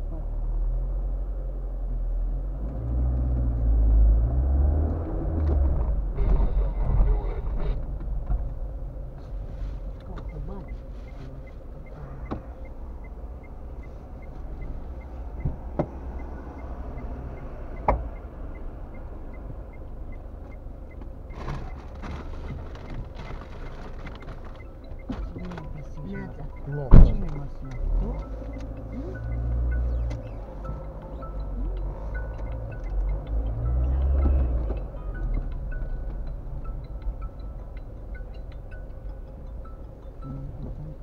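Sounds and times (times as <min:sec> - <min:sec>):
car engine idling: 0:00.0 - 0:41.0
engine and road rumble: 0:00.0 - 0:41.0
turn signal ticking: 0:00.0 - 0:41.0.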